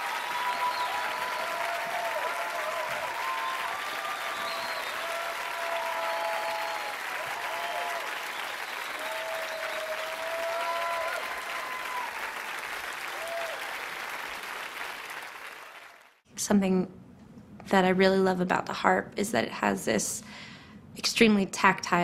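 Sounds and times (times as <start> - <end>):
whoops and cheers: 0.0 - 13.9
audience applauding: 0.0 - 16.2.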